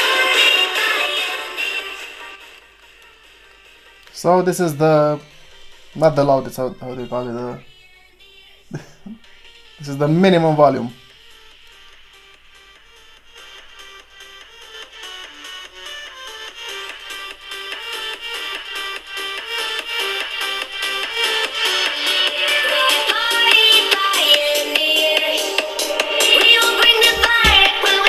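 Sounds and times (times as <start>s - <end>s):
dance music from phone speaker: 0.0s - 28.0s.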